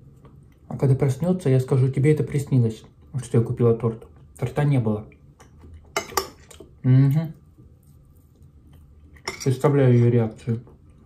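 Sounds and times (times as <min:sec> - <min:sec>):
teaspoon clinking on a plate: 0:06.0 - 0:06.6, 0:09.2 - 0:09.6.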